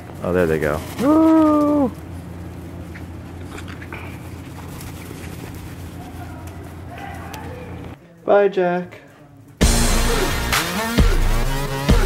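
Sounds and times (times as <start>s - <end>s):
low background hum: 0.0s - 9.6s.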